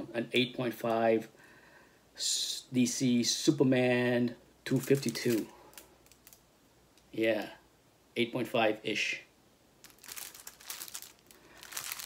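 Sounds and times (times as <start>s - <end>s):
plastic sleeve crinkling: 4.7s - 6.4s, 9.8s - 12.0s.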